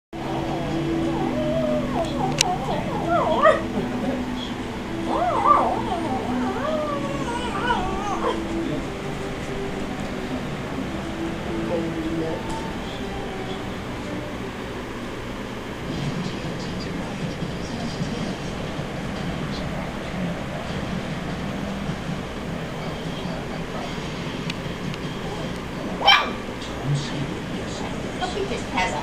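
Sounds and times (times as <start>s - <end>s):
low background hum: 0.2s - 29.0s.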